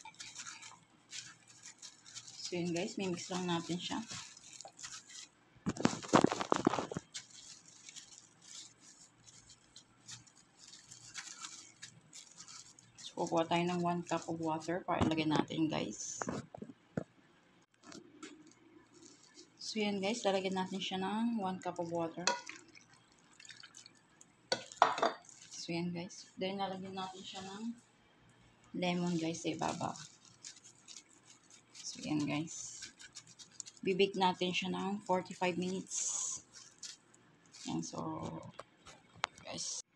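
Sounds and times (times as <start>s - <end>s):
plastic glove crinkling on fish: 0.0s - 16.7s, 17.8s - 24.0s, 24.6s - 27.8s, 28.8s - 39.9s
water pouring and splashing: 21.7s - 25.6s.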